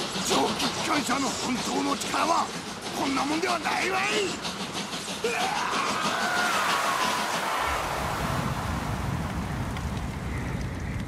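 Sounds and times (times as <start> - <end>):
fire rushing noise: 5.1 - 11.0
deep rumble: 7.6 - 11.0.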